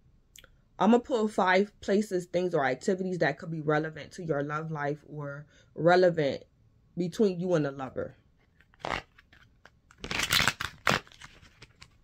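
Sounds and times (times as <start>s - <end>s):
cards being shuffled: 8.4s - 12.0s
cards slapping: 8.6s - 12.0s.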